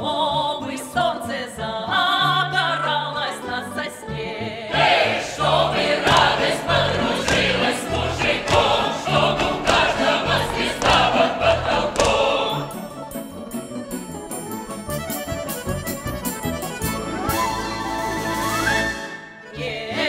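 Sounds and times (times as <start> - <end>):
choir singing: 0.0 - 13.3, 18.7 - 20.0
folk instrument orchestra: 0.1 - 20.0.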